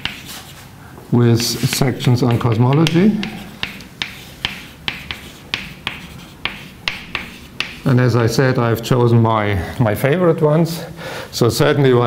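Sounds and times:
chalk tapping on blackboard: 0.0s - 0.5s, 1.4s - 7.9s
chalk scratching: 0.0s - 0.6s, 1.4s - 7.9s.

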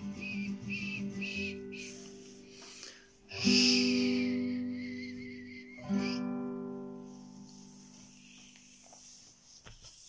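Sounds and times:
acoustic guitar strumming: 0.0s - 8.5s.

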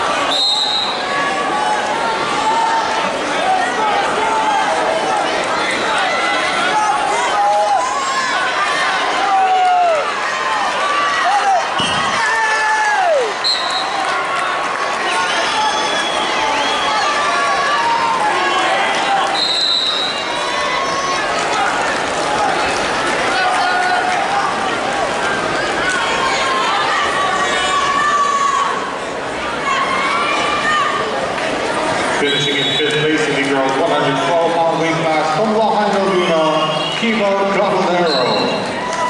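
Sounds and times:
crowd shouting and calling out: 0.0s - 39.0s.

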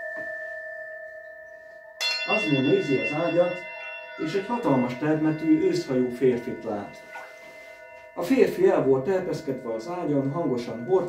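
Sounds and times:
singing bowl ringing: 0.0s - 11.0s.

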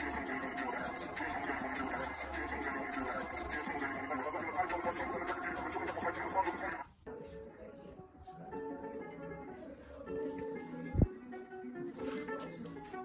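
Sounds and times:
music through laptop speakers: 0.0s - 6.9s.

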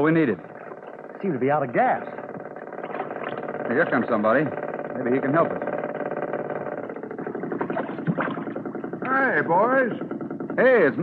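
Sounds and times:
motorboat engine running: 0.0s - 11.0s.

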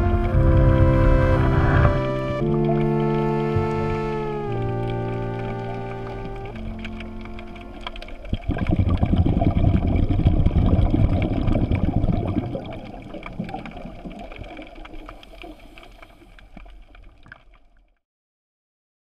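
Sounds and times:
water gurgling underwater: 0.0s - 17.6s
small underwater clicks: 2.4s - 18.0s.

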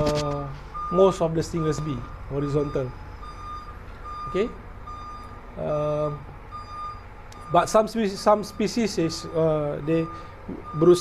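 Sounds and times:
man speaking: 0.0s - 3.0s, 4.2s - 4.6s, 5.6s - 6.3s, 7.5s - 11.0s
high electronic beep: 0.8s - 5.4s, 6.5s - 7.6s.

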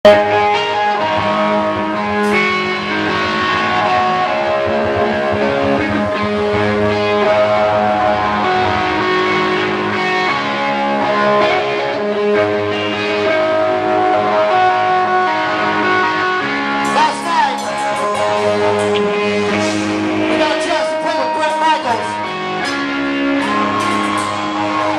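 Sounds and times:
rock band playing live: 0.0s - 24.9s
sliding guitar note: 0.1s - 11.1s, 15.7s - 20.7s
sharp cymbal-like hits: 16.8s - 20.2s.

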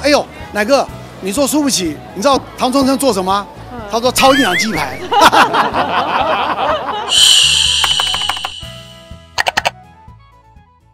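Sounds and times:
bright ringing jingle tone: 7.1s - 9.1s
sharp mouse clicks: 7.3s - 8.8s, 9.4s - 9.8s.

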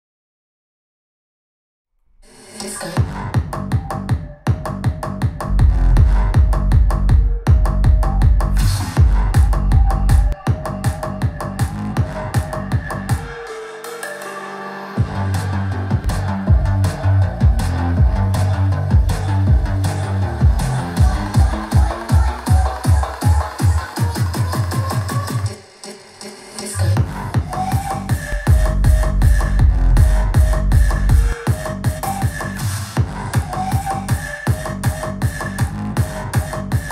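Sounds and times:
electronic dance music: 2.5s - 36.9s
deep bass from subwoofer: 2.9s - 13.3s, 15.0s - 25.4s, 26.8s - 36.9s.

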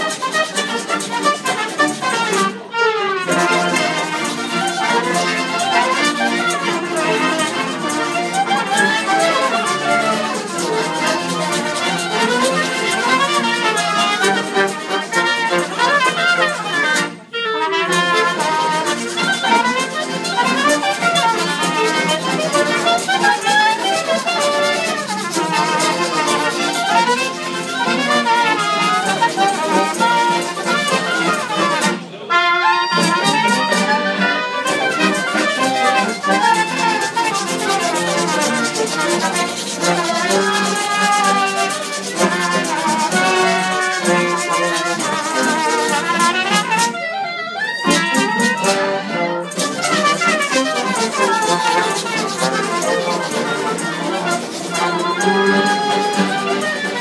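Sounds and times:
strummed acoustic guitars: 0.0s - 2.6s, 3.3s - 17.2s, 17.8s - 32.3s
trombone and trumpet playing: 0.0s - 47.1s, 47.8s - 57.0s
accordion: 0.0s - 57.0s.

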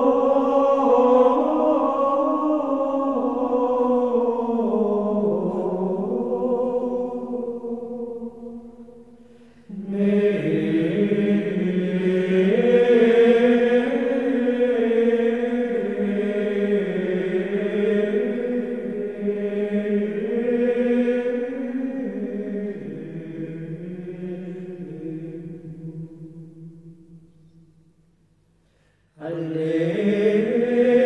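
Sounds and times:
men's choir chanting in unison: 0.0s - 8.3s, 9.7s - 26.4s, 29.2s - 31.0s.

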